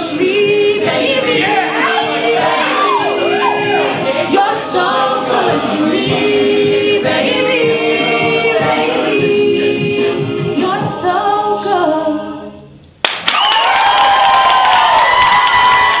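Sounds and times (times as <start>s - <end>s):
a cappella group singing: 0.0s - 12.8s
audience cheering and clapping: 13.0s - 16.0s.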